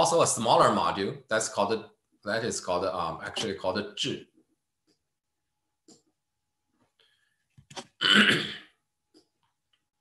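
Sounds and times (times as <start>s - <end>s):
man clearing his throat: 8.0s - 8.7s.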